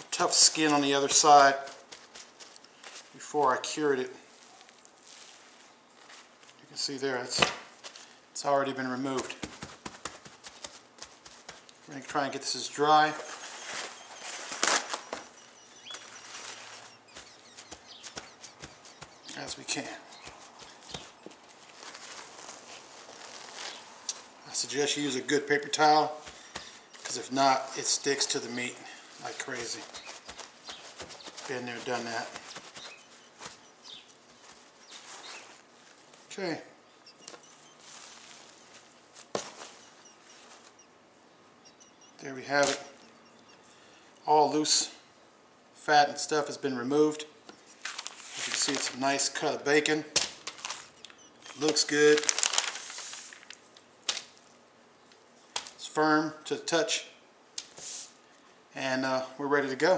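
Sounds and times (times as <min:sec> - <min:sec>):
paper towels patted onto meat: 0:00.0 - 0:03.2, 0:09.2 - 0:11.9, 0:13.6 - 0:24.3, 0:26.1 - 0:27.3, 0:29.2 - 0:36.2, 0:37.3 - 0:40.8, 0:51.5 - 0:54.5, 0:55.1 - 0:55.8
paper towels rustling: 0:00.0 - 0:08.2, 0:08.8 - 0:36.4, 0:37.1 - 0:40.8, 0:47.6 - 0:49.6, 0:50.3 - 0:54.6.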